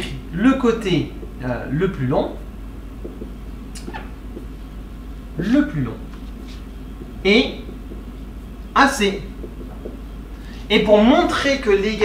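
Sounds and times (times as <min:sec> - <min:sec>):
steady low hum: 0:00.0 - 0:12.0
marker squeaking on whiteboard: 0:03.0 - 0:04.5.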